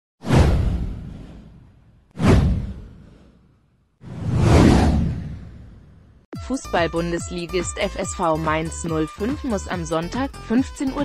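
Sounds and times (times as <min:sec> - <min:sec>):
deep boom: 0:00.2 - 0:03.1
downward whoosh: 0:04.0 - 0:05.9.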